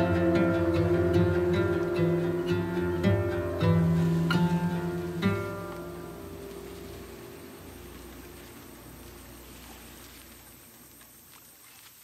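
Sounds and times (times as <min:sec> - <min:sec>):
acoustic guitar chord ringing: 0:00.0 - 0:10.5
faint hiss and low hum: 0:00.0 - 0:12.0.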